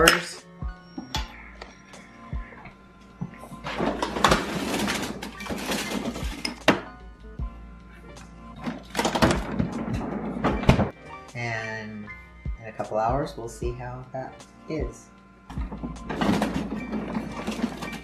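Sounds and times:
background music: 0.0 - 18.0
freezer drawer sliding and clatter: 3.5 - 6.8, 8.6 - 10.9, 15.6 - 18.0.

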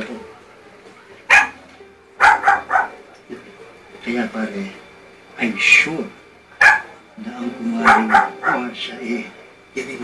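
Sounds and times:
dog barking: 1.3 - 1.6, 2.2 - 3.0, 6.6 - 7.0, 7.8 - 8.7.

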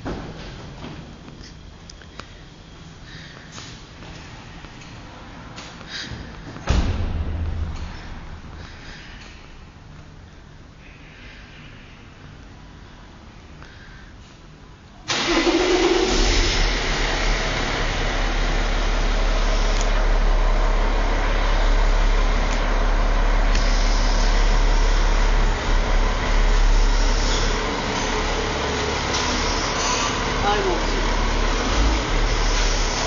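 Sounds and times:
car engine starting and running: 15.1 - 33.0.

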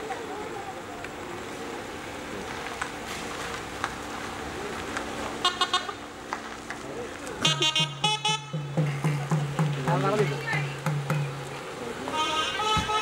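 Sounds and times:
car horns honking: 5.4 - 6.0, 7.4 - 9.3, 12.0 - 13.0
drum low beat: 7.5 - 11.6.

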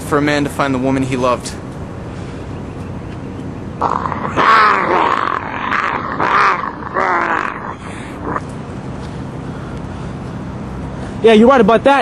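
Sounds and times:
steady background noise: 0.0 - 12.0
man's wavering cries: 3.9 - 8.4.

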